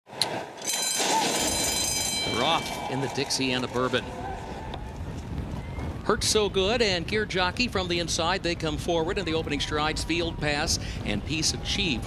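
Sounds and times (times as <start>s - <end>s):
starting gate bell ringing: 0.6s - 4.0s
low rumble: 2.1s - 12.0s.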